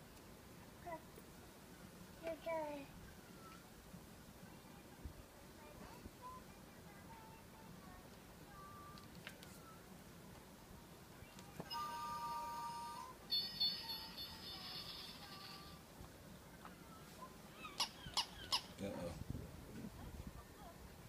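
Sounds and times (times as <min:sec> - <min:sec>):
electronic toy tunes: 0:11.7 - 0:15.8.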